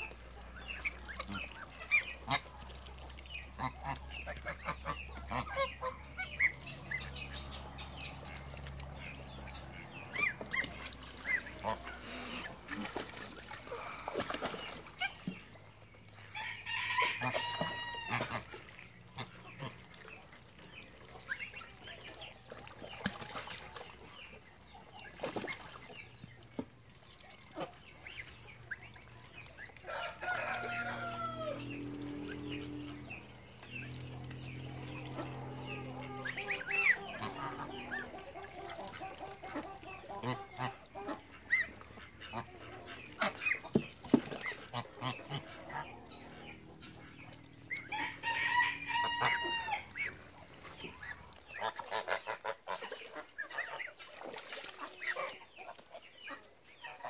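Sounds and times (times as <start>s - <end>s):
chickens: 0.0s - 57.0s
geese honking: 16.4s - 19.8s, 34.0s - 43.7s, 44.7s - 54.0s.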